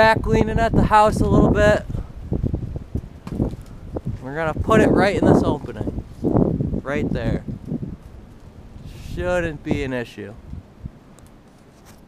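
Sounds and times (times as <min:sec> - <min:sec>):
wind rumbling on microphone: 0:00.0 - 0:12.0.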